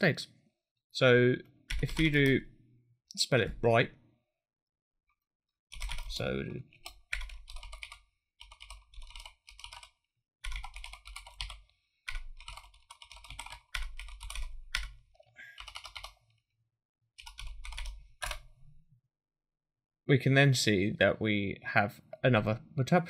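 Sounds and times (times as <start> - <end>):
typing on keyboard: 1.7 - 2.4, 5.7 - 15.0, 15.6 - 16.2, 17.2 - 18.5.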